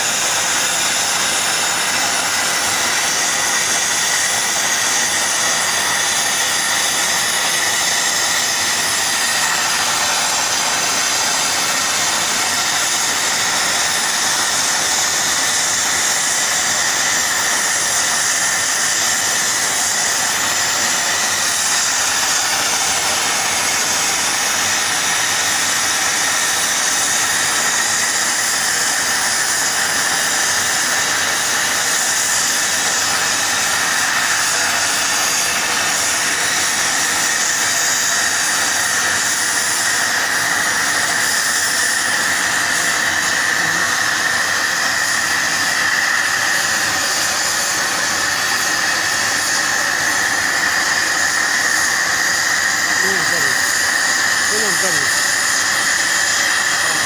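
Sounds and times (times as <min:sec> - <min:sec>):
plasma torch hissing with whistle: 0:00.0 - 0:57.0.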